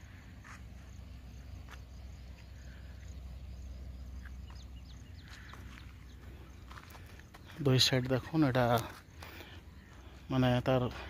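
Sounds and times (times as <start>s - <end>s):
bird chirping: 0.0s - 11.0s
low outdoor rumble: 0.0s - 11.0s.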